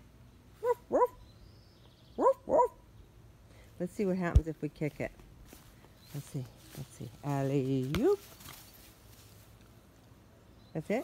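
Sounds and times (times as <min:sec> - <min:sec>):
puppy barking high-pitched: 0:00.6 - 0:01.2, 0:02.2 - 0:02.8.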